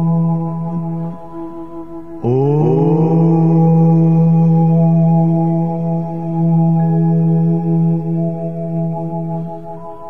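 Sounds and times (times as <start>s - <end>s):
meditative background music drone: 0.0s - 10.0s
voice chanting om: 0.0s - 10.0s.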